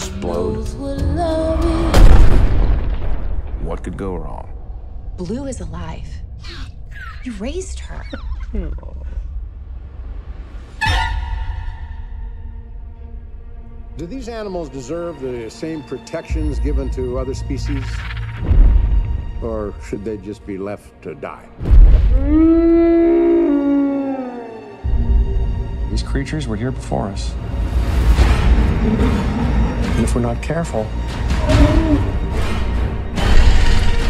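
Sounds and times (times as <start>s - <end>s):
sudden deep boom: 1.9s - 4.0s
high dinosaur cry: 22.2s - 24.8s.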